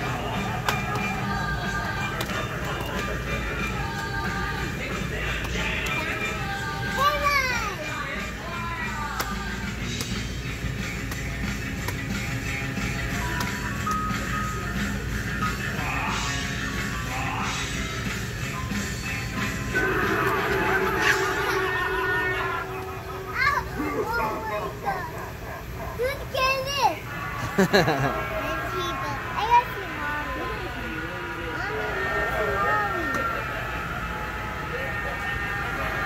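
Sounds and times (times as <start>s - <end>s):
background music: 0.0s - 26.1s, 26.7s - 36.0s.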